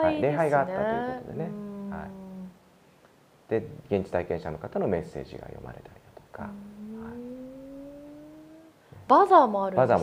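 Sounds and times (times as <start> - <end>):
person humming rising note: 1.3 - 2.6, 6.4 - 8.8.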